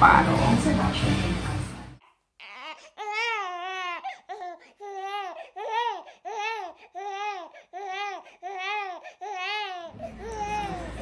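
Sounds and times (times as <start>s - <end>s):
baby crying: 2.0s - 11.0s.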